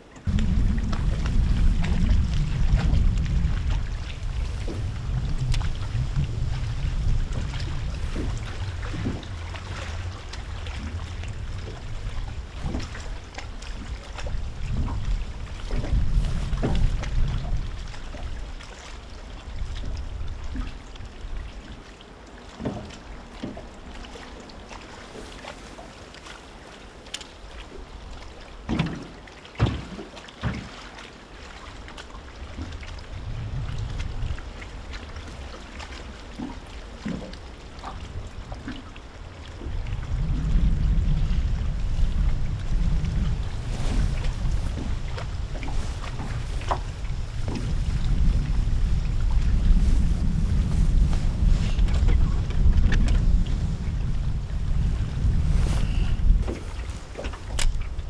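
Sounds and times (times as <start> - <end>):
wind buffeting microphone: 0.0 - 21.8, 32.2 - 58.0
light clicks and taps: 27.1 - 27.3, 57.2 - 57.9.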